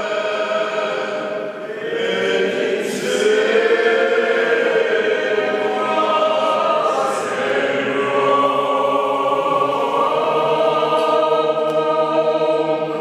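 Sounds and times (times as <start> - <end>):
male vocal group singing a cappella: 0.0 - 13.0.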